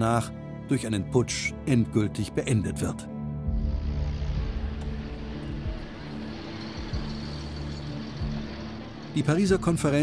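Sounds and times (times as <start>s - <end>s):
low steady music score: 0.0s - 10.0s.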